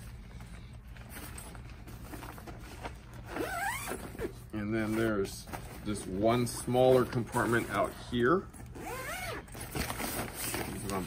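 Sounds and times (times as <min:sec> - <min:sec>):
nylon fabric rustling: 0:01.0 - 0:08.1
zipper scraping: 0:03.2 - 0:05.1, 0:08.7 - 0:09.6.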